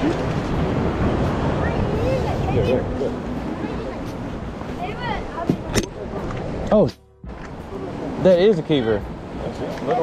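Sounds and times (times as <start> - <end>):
outdoor noise rush: 0.0 - 10.0.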